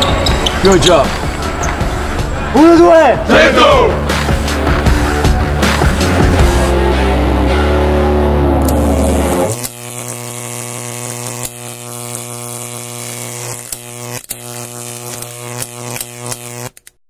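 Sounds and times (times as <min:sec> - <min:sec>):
buzzy electric hum: 0:04.0 - 0:16.8.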